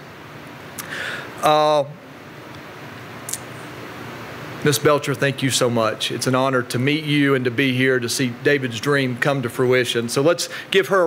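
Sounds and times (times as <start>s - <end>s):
room tone hum and hiss: 0.0s - 11.0s.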